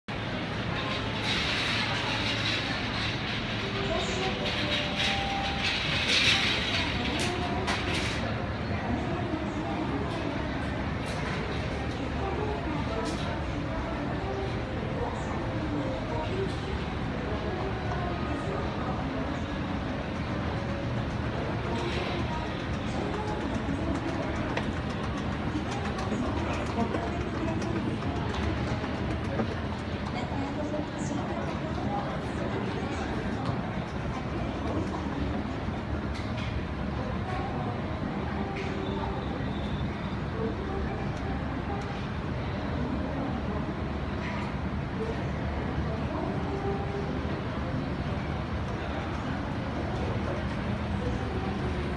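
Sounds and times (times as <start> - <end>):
escalator mechanical rumble: 0.1 - 38.2
faint background voices: 0.1 - 51.9.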